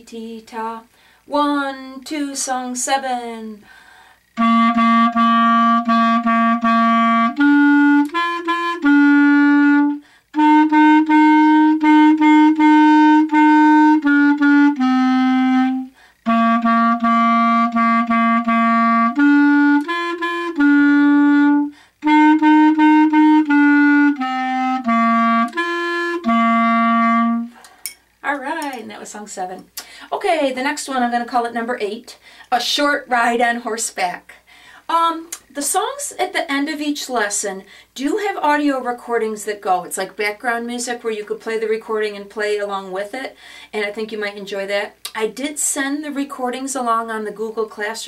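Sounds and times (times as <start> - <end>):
player taking a breath: 0.9 - 1.3, 3.6 - 4.3, 16.0 - 16.2, 27.5 - 28.1, 29.8 - 30.1, 32.2 - 32.5, 34.4 - 34.9, 37.7 - 38.0, 43.4 - 43.7
solo clarinet melody: 4.4 - 27.6.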